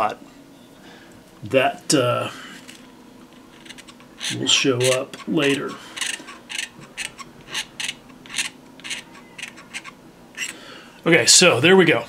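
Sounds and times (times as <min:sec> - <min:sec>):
knife blade scraping plastic: 0:02.6 - 0:10.6.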